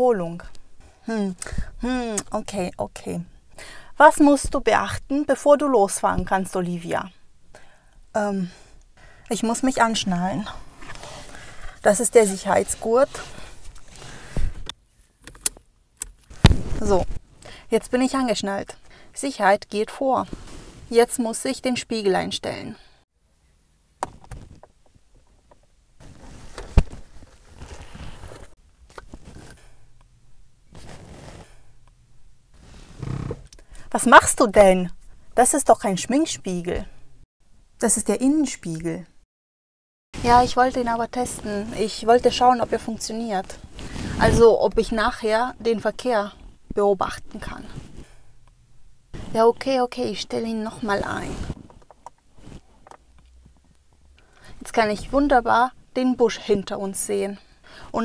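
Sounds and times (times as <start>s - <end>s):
rustling and handling noises: 10.6s - 17.3s, 24.0s - 31.9s, 49.1s - 54.0s.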